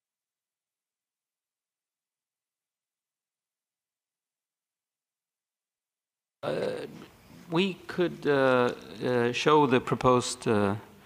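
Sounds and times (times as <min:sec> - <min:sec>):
man's low grunt: 0:06.4 - 0:07.0.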